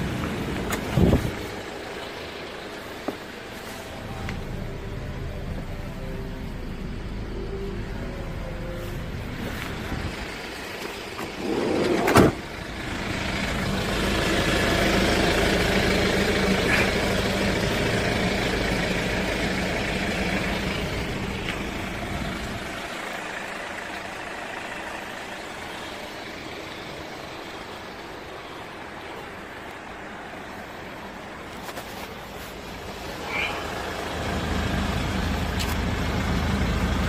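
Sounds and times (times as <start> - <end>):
van engine idling: 0.0 - 37.0
van door slamming: 11.9 - 12.4.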